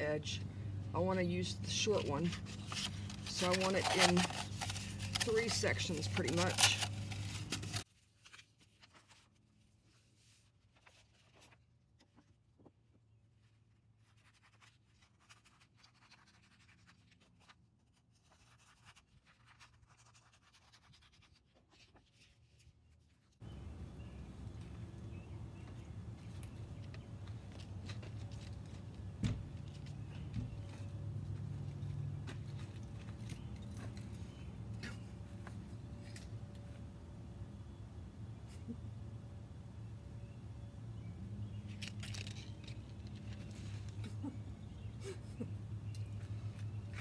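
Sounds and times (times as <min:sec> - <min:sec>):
low steady hum: 0:00.0 - 0:14.6, 0:23.4 - 0:47.0
scissors cutting sandpaper: 0:01.9 - 0:07.8
sandpaper crinkling: 0:01.9 - 0:11.7, 0:13.4 - 0:23.4.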